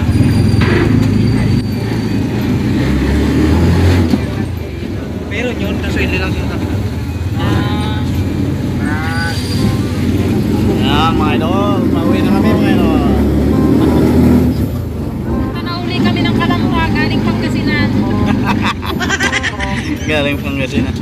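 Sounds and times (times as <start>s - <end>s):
engine running low rumble: 0.0s - 19.0s.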